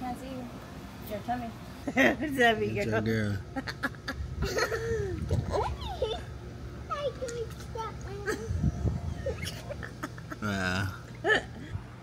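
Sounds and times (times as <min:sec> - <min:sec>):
young children calling and chattering: 0:04.0 - 0:11.0.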